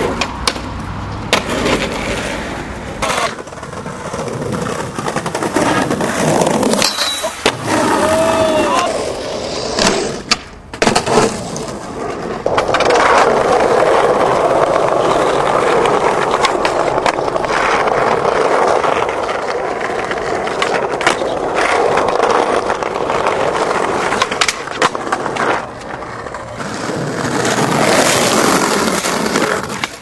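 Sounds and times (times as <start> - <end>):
skateboard clacks: 0.0 - 30.0
skateboard wheels rolling on pavement: 0.0 - 30.0.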